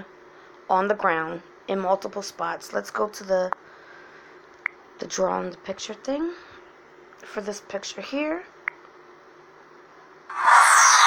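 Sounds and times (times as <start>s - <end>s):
loud hissing whoosh: 10.3s - 11.0s.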